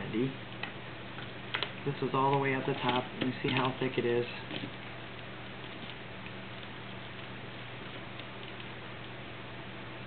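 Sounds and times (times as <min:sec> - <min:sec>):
low hum and hiss: 0:00.0 - 0:10.0.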